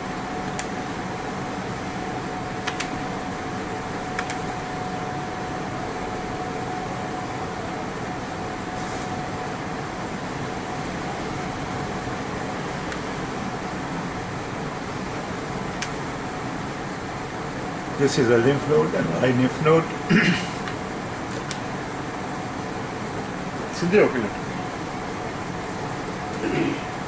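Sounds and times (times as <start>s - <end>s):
fan noise: 0.0s - 27.0s
faint high whine: 21.7s - 27.0s.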